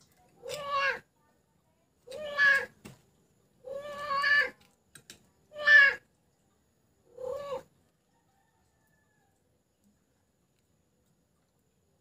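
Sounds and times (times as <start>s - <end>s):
cat meowing: 2.1s - 2.7s, 3.6s - 4.6s, 5.5s - 6.0s.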